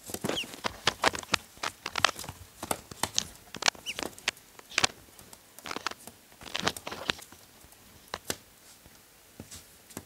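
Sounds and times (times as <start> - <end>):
duckling bills clicking: 0.1 - 7.4
high duckling peep: 0.3 - 1.4, 3.6 - 4.9.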